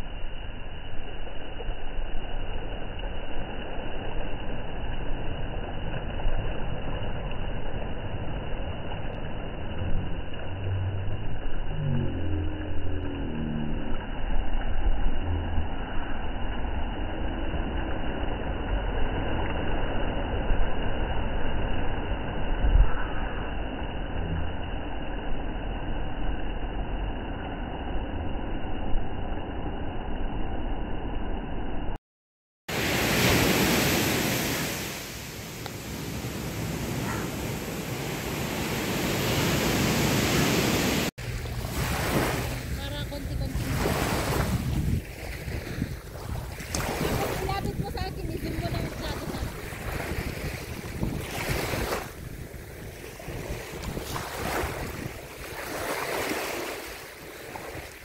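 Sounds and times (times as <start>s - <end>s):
wind rumble on microphone: 0.0s - 32.0s, 36.1s - 58.0s
small waves washing on sand: 32.7s - 58.0s.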